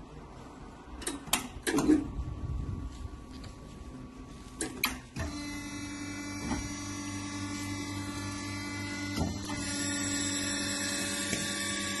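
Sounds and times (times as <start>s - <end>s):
motor humming: 5.2s - 12.0s.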